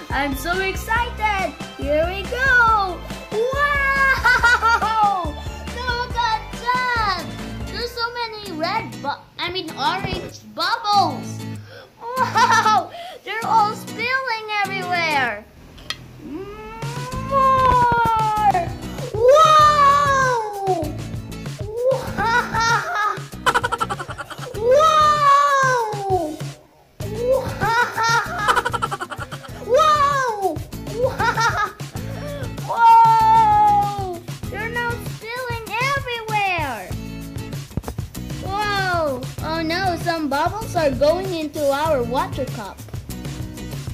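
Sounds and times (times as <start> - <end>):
background music: 0.0 - 43.9
boy's excited wordless cries: 2.3 - 7.2, 12.0 - 13.5, 16.2 - 36.8, 38.4 - 39.5
high-pitched cry: 16.2 - 20.9, 21.7 - 26.4, 27.1 - 31.2.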